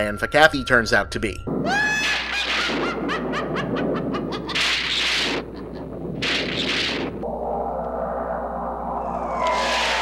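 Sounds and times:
high rising squawk-like cries: 9.0s - 10.0s.

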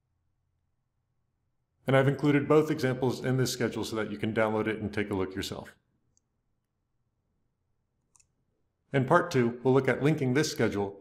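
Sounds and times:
man's voice: 1.9s - 5.7s, 9.0s - 11.0s.

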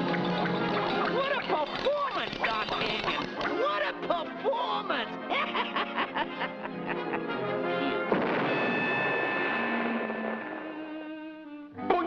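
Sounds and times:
orchestral cartoon music: 0.0s - 12.0s
noisy crash: 8.1s - 11.1s
sharp hit: 8.1s - 11.3s.

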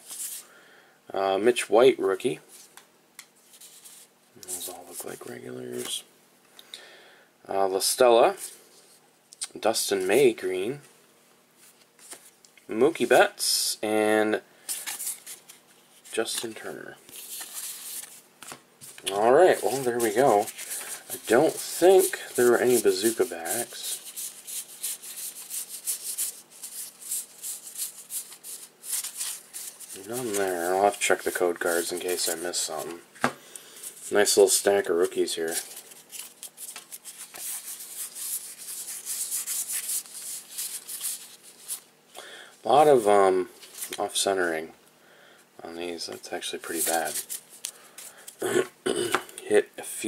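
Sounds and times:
cards rustling and sliding: 0.0s - 0.4s, 3.4s - 6.0s, 11.6s - 12.4s, 14.6s - 41.9s, 46.7s - 48.4s.

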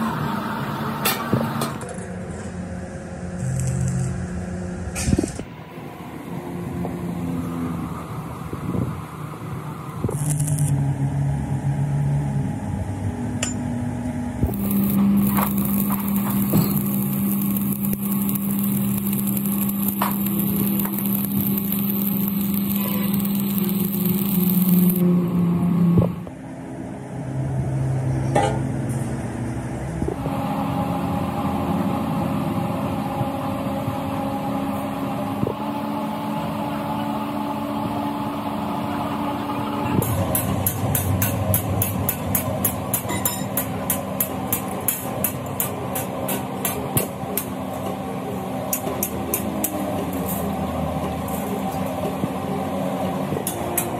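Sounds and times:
workshop machine hum: 0.0s - 53.9s
arc welding crackling: 3.4s - 4.3s, 10.0s - 10.8s, 14.4s - 26.2s.

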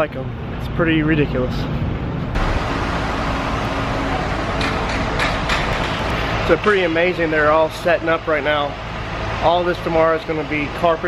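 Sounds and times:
steady rushing noise: 1.5s - 11.0s.

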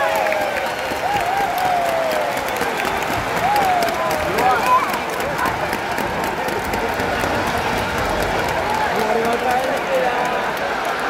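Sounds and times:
calls from crowd: 0.0s - 11.0s
crowd voices din: 0.0s - 11.0s
scattered clapping: 0.0s - 11.0s.

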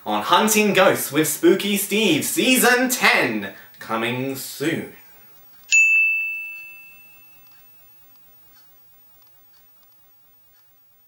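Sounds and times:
high ding: 5.7s - 8.1s.

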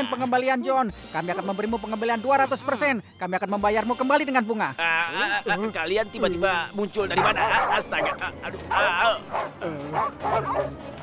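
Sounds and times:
cartoon dogs barking: 7.1s - 10.8s.

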